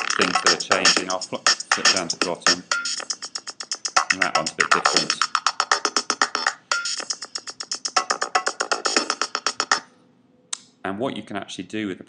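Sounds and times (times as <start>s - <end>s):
drum machine rapid hits: 0.0s - 9.8s.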